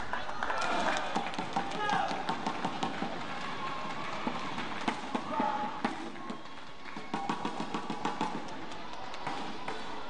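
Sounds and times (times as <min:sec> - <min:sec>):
crowd percussive beats: 0:00.0 - 0:10.0.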